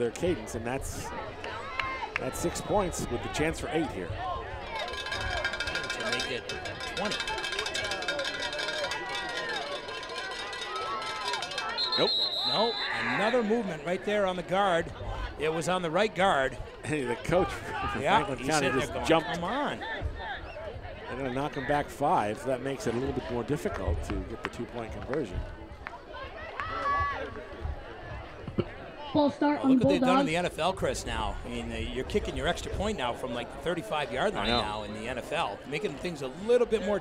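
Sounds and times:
outdoor background noise: 0.0 - 37.0.

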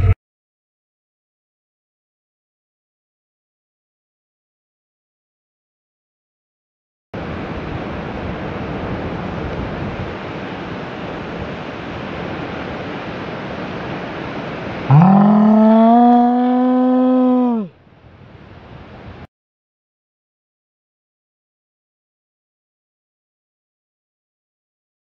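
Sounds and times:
wind rushing over microphone: 7.2 - 14.9, 18.0 - 19.3
surf: 7.2 - 17.7
person yelling: 14.9 - 17.7.

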